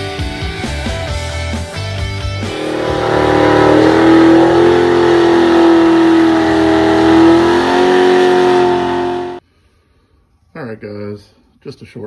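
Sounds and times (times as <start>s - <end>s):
car engine at high revs: 2.4s - 9.4s.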